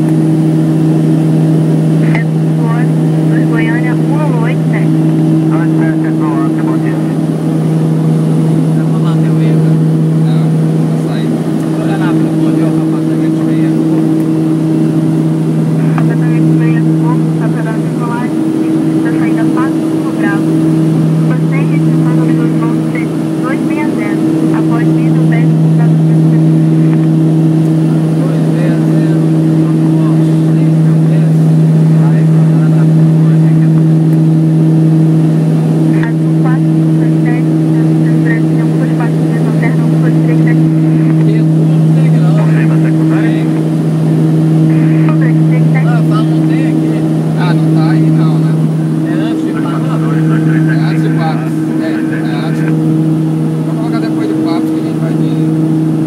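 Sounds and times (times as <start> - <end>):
turboprop engines droning: 0.0 - 56.0.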